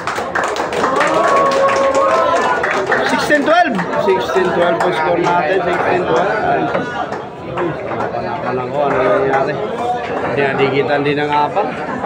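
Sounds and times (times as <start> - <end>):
spectators clapping: 0.0 - 11.0.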